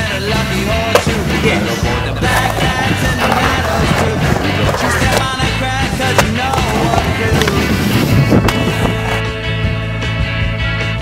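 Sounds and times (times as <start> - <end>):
background music: 0.0 - 11.0
skateboard wheels rolling on concrete: 0.0 - 11.0
skateboard knocks: 2.3 - 7.7.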